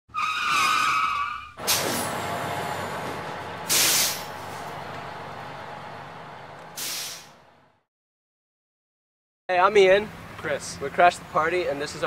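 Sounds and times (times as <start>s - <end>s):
tyre screech: 0.1s - 2.2s
short sharp hiss: 1.6s - 2.2s, 3.7s - 4.4s, 6.8s - 7.4s
loud burst of noise: 1.6s - 7.8s.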